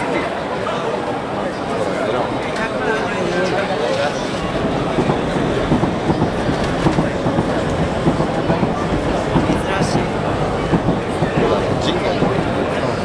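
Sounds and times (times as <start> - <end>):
crowd voices: 0.0 - 13.0
rumbling clatter: 4.4 - 13.0.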